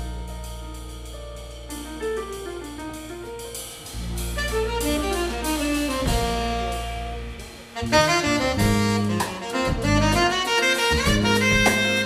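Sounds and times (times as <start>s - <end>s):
bass line: 0.0s - 12.0s
drum kit with cymbals: 0.0s - 12.0s
piano notes: 0.0s - 12.0s.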